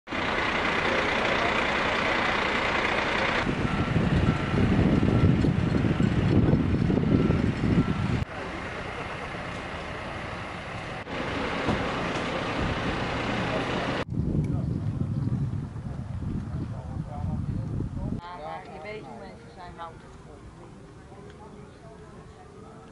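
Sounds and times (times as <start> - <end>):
diesel engine running: 0.1 - 14.1
reversing alarm beeping: 1.4 - 13.3.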